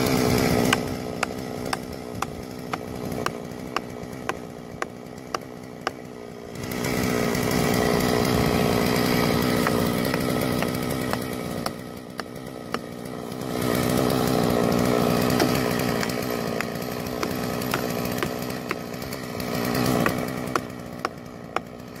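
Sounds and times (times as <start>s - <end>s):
chainsaw cutting: 0.0s - 22.0s
hammer knocking wedges: 0.6s - 6.0s, 9.4s - 12.9s, 15.2s - 19.0s, 19.8s - 21.7s.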